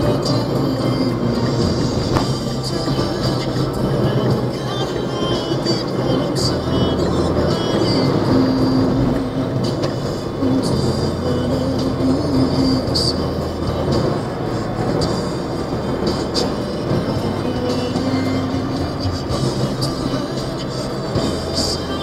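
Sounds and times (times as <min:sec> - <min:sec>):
engine and road rumble: 0:00.0 - 0:22.0
music playing: 0:00.0 - 0:22.0.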